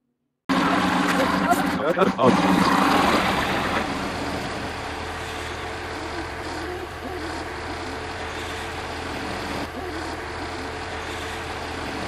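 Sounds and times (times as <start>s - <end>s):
vehicle engine running: 0.5s - 12.0s.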